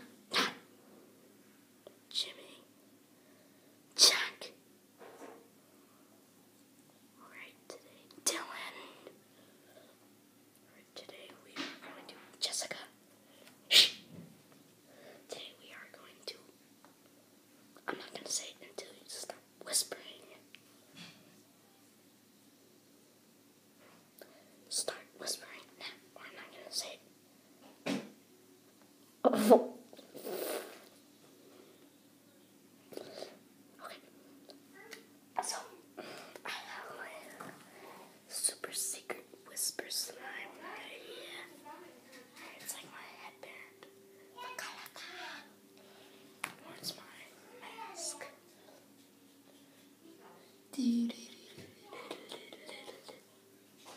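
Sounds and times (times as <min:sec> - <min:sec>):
person whispering: 0:02.1 - 0:02.7, 0:07.2 - 0:09.1, 0:10.7 - 0:13.0, 0:36.4 - 0:41.8, 0:42.4 - 0:45.5, 0:46.6 - 0:48.3, 0:50.7 - 0:53.2.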